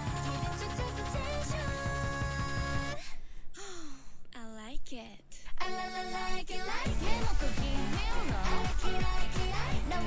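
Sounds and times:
woman sighing: 3.0 - 4.3
woman speaking: 4.3 - 5.4.

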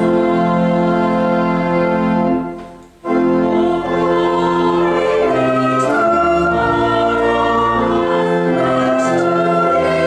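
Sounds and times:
church choir singing a carol: 0.0 - 10.0
organ accompaniment: 0.0 - 10.0.

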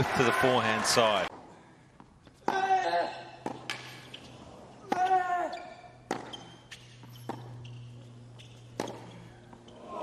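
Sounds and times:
tennis ball struck by racket: 6.1 - 6.4, 8.7 - 9.1.

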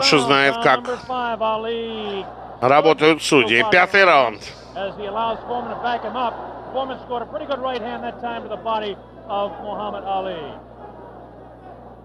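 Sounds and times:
man commentating: 0.0 - 10.6
steady low hum: 0.0 - 12.0.

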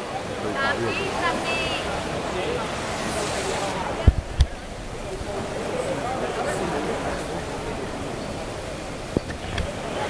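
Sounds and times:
spectators' voices: 0.0 - 10.0
swimmers splashing: 0.0 - 10.0.

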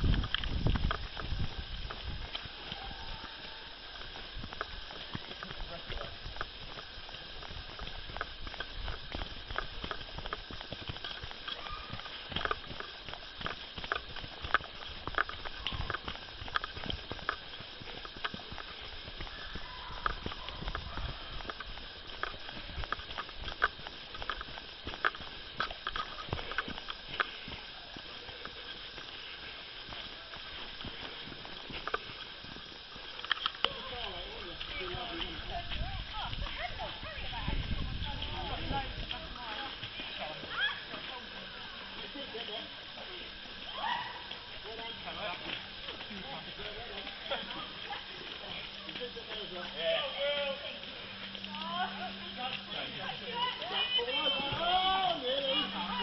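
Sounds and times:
running footsteps on dirt trail: 0.0 - 56.0.

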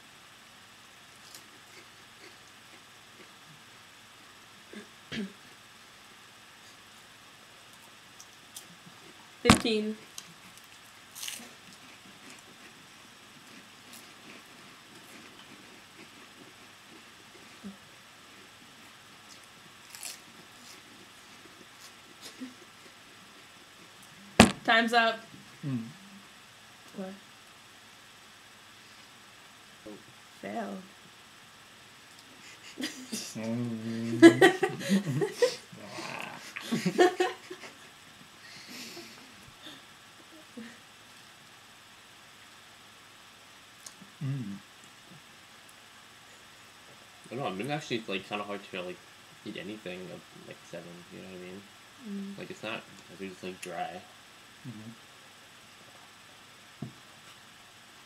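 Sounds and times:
chewing crunchy crackers: 10.1 - 12.8, 19.2 - 23.2
person laughing breathily: 32.4 - 39.8.

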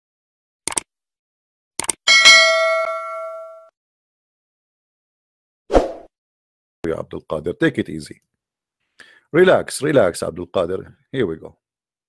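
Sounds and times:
bright bell ding: 2.1 - 3.7.

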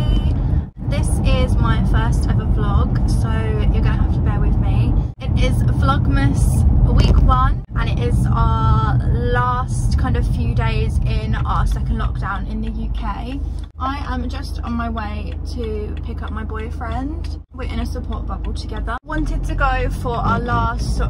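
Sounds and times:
car rumble: 0.0 - 21.0
woman talking: 0.0 - 21.0.

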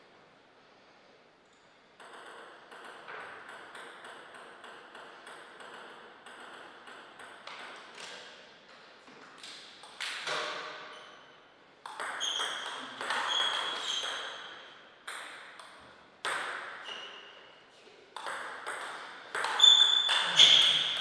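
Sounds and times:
table tennis ball clicking: 11.8 - 14.3.

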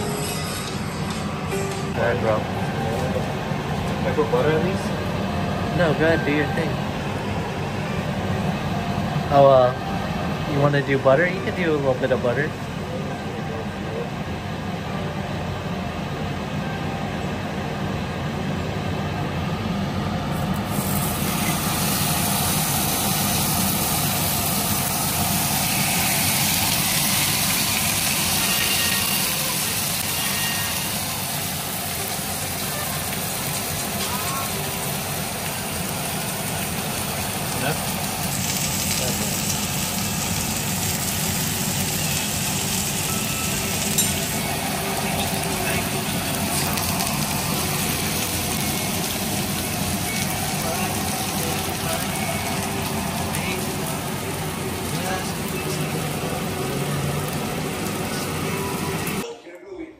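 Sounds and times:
steaks sizzling in a frying pan: 20.7 - 58.4.

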